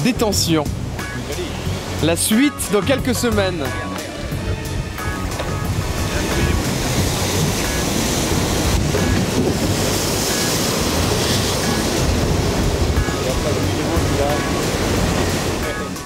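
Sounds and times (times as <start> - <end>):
sea water rushing past hull: 0.0 - 16.0
wind buffeting microphone: 2.7 - 16.0.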